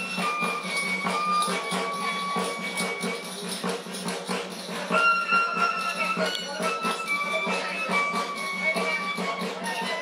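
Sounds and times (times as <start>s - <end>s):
tambourine jingles: 0.0s - 10.0s.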